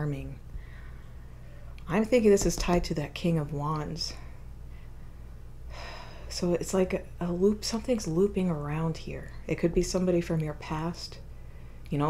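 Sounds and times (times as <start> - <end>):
woman speaking: 0.0 - 0.4, 1.8 - 4.3, 6.3 - 11.2
steady low hum: 0.0 - 12.0.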